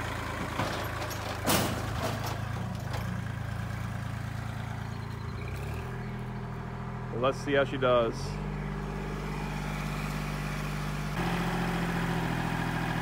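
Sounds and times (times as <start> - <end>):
diesel engine running: 0.0 - 13.0.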